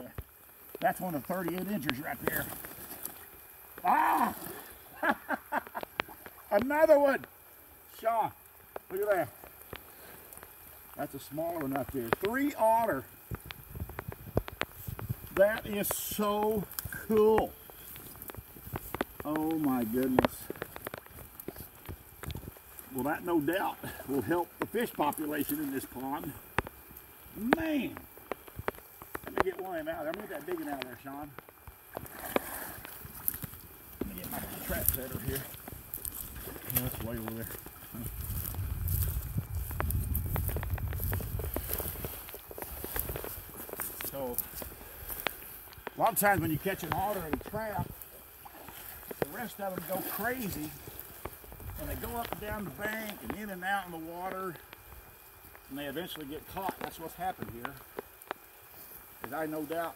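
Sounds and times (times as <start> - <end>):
water drips and splashes: 0.0 - 59.9
footsteps crunching dry grass: 8.7 - 59.9.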